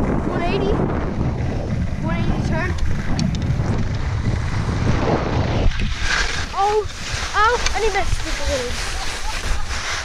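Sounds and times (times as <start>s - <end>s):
wind buffeting microphone: 0.0s - 10.0s
skis hissing on snow: 5.7s - 10.0s.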